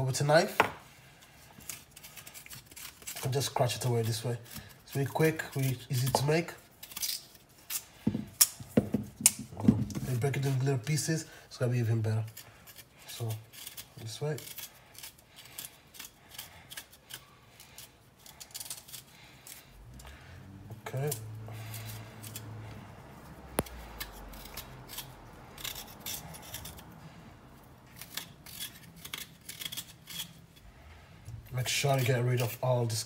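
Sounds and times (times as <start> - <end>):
knife scraping ginger skin: 0.4 - 33.0.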